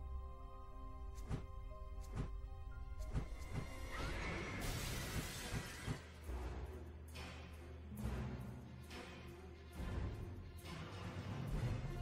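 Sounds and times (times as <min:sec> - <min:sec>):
low menu music: 0:00.0 - 0:12.0.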